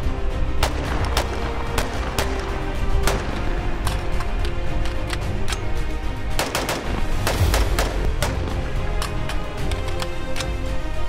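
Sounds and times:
background music: 0.0 - 11.0
rifle shots: 0.6 - 4.0, 6.3 - 9.2.

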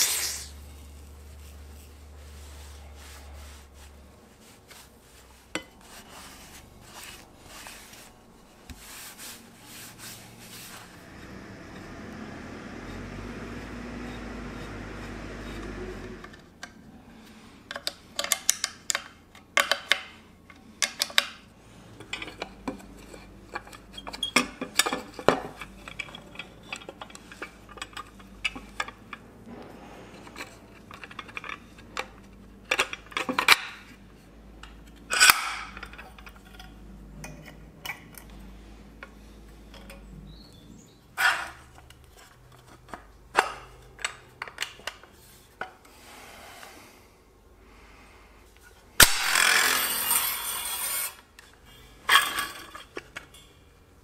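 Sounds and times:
metal fittings and springs clinking: 51.7 - 53.6.

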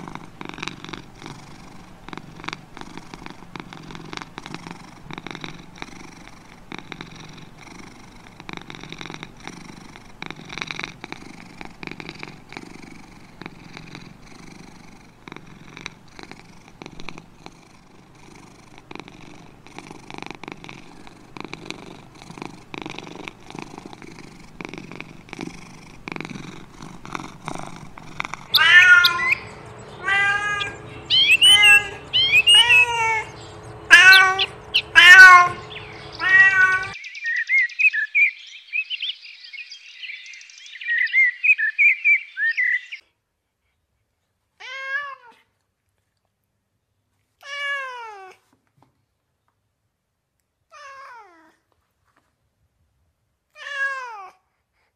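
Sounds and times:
cat purring: 0.0 - 37.0
faint steady hum: 0.0 - 44.6
high kitten meows: 28.5 - 33.3, 33.9 - 37.0, 53.6 - 54.4.

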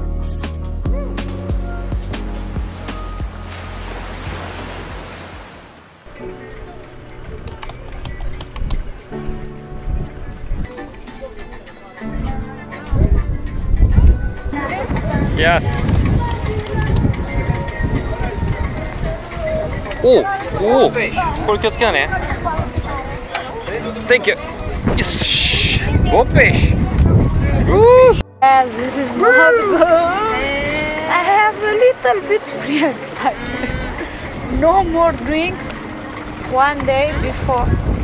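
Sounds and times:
background music: 0.0 - 38.0
ocean surf washing in: 2.4 - 6.5
wind on microphone: 7.1 - 11.0, 12.2 - 23.7, 24.4 - 28.2, 29.8 - 31.3, 33.3 - 38.0
faint voices: 9.8 - 37.9.

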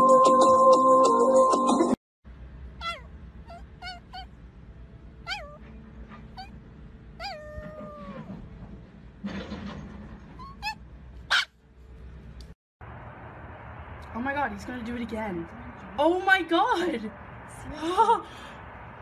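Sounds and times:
small dog whining and yelping: 2.8 - 4.4, 5.2 - 8.5, 10.4 - 11.5.

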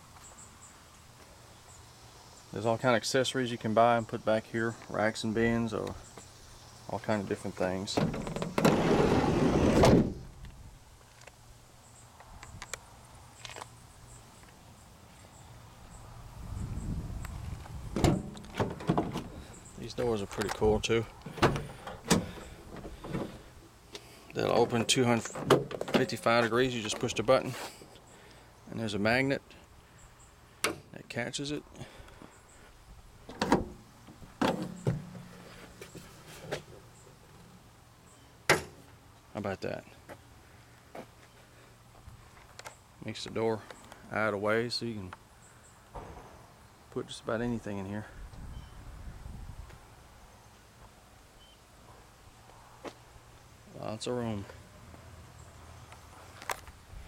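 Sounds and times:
van sliding door rolling and shutting: 7.9 - 10.4, 17.9 - 19.6, 21.3 - 23.5.

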